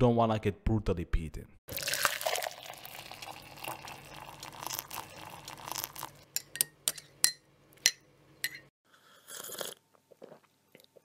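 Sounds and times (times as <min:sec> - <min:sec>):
spoon stirring in glass: 0:02.1 - 0:08.7
spoon clinking against glass: 0:02.3 - 0:08.7.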